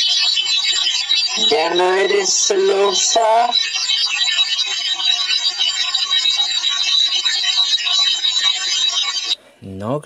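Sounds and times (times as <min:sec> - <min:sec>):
radio static: 0:00.0 - 0:09.4.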